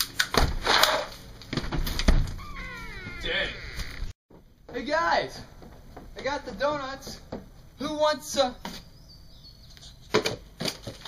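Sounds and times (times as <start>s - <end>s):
high falling wail: 2.4s - 4.1s
sharp knocks and thump: 5.6s - 7.6s.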